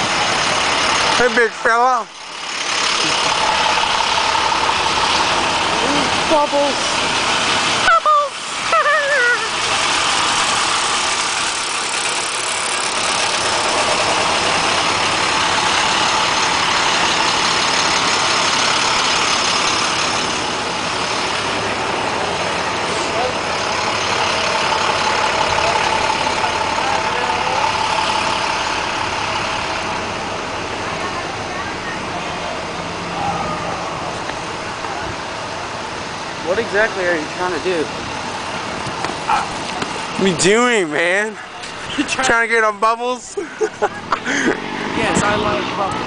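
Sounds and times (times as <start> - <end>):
bus engines idling: 0.0 - 46.0
person shouting: 7.8 - 9.5.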